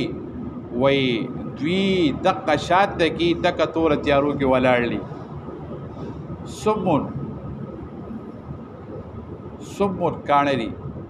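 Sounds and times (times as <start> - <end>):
background rumble and hiss: 0.0 - 11.0
faint steady hum: 0.0 - 11.0.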